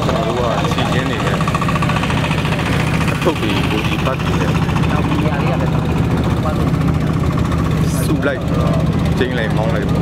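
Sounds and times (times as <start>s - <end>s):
engine droning: 0.0s - 10.0s.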